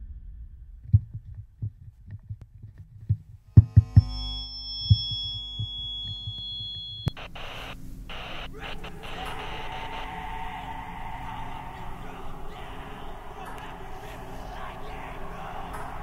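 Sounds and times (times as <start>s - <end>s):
soft low thumps: 0.0s - 7.1s
steady electronic tones: 3.5s - 16.0s
static hiss: 4.1s - 16.0s
click: 6.1s - 7.7s.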